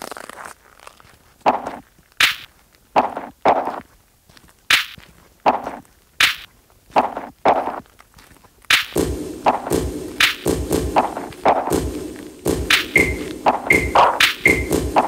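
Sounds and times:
sharp electronic percussion hits: 8.7 - 15.0.

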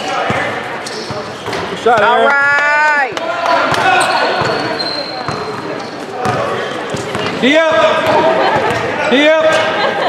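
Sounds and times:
echoing voices: 0.0 - 10.0.

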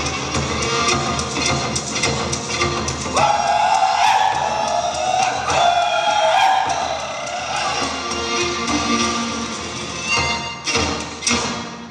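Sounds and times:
drum beating: 3.1 - 8.0
bowed fiddles playing: 3.2 - 8.6.

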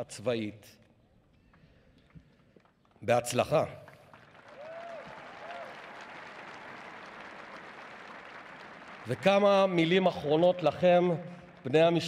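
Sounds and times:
large crowd applauding: 3.3 - 12.0.

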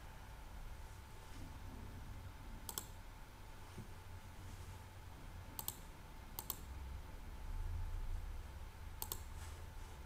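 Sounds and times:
faint low hum: 0.0 - 10.0
computer mouse clicks: 2.6 - 3.0, 5.6 - 6.7, 9.0 - 9.3.

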